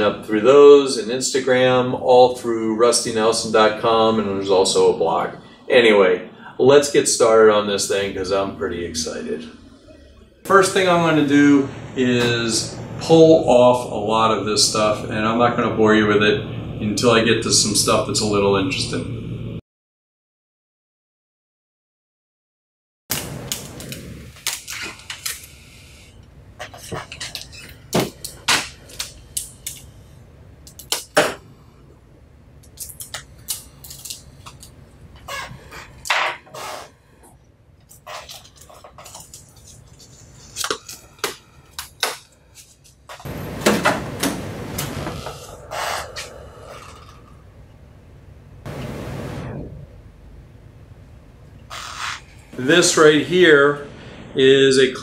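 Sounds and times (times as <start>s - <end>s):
tape tearing: 23.1s - 25.6s.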